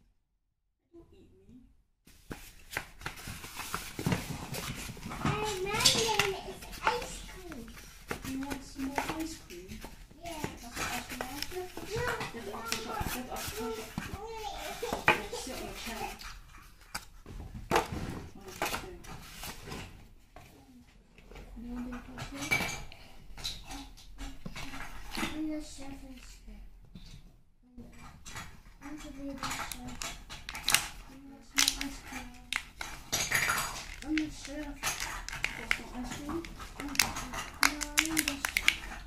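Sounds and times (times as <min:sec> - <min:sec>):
cardboard and paper rustling: 0:02.1 - 0:20.7, 0:28.3 - 0:39.0.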